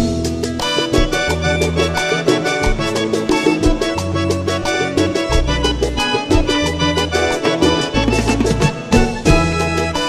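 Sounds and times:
accordion playing quick runs: 0.0 - 10.0
bass line: 0.0 - 10.0
percussion strikes: 0.0 - 10.0.

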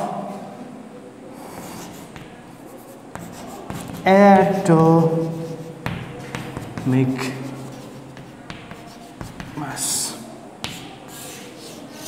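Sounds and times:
chalk scratching on chalkboard: 1.4 - 12.0
chalk tapping on chalkboard: 1.5 - 9.7, 10.6 - 12.0.

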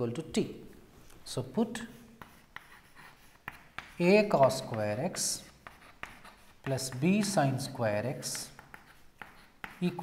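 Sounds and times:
chalk scratching on chalkboard: 1.7 - 10.0.

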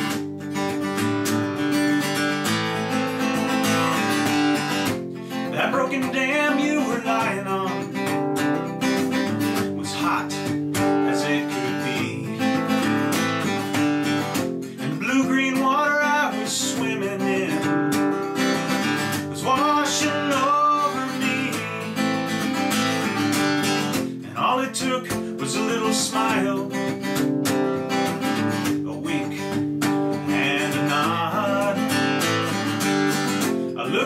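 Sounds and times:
acoustic guitar strumming: 0.0 - 34.0
man singing: 5.3 - 13.3, 14.7 - 27.3, 28.0 - 32.8, 33.6 - 34.0.

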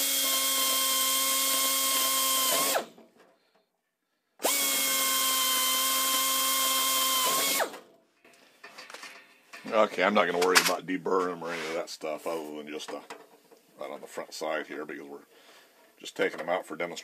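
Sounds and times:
pneumatic air drill whining: 0.0 - 3.1, 4.4 - 7.8.

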